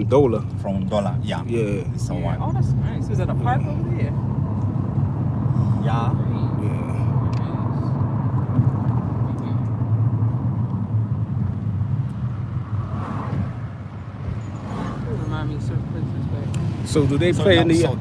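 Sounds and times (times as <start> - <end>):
car cabin drone: 0.0 - 18.0.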